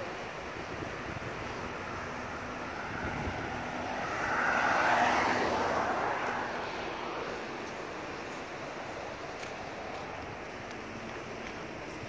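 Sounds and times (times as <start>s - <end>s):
vehicle passing by: 1.3s - 8.4s.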